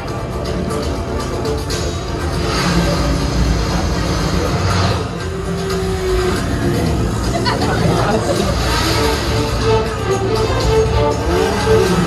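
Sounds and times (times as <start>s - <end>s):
electronic film music with beat: 0.0s - 12.0s.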